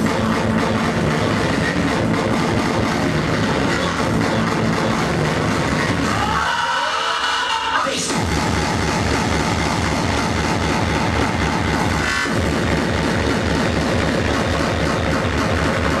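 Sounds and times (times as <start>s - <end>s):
fast pounding kick drum music: 0.0s - 6.4s, 8.1s - 16.0s.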